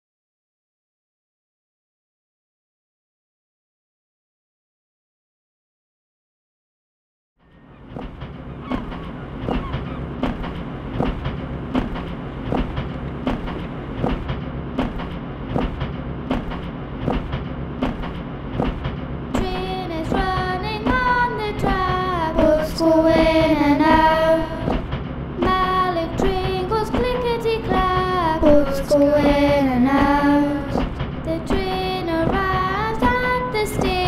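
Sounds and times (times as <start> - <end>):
train wheels clacking on rails: 7.5 - 34.0
children singing: 19.4 - 24.8, 25.4 - 34.0.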